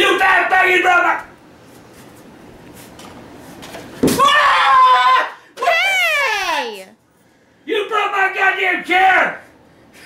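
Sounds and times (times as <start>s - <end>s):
man screaming in anger: 4.2s - 6.4s.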